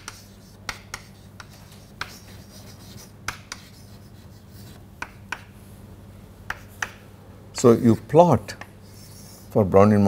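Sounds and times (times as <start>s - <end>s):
chalk scratching on chalkboard: 0.0s - 5.5s, 8.6s - 9.6s
chalk tapping on board: 0.0s - 5.6s, 6.5s - 7.0s
low steady hum: 0.0s - 10.0s.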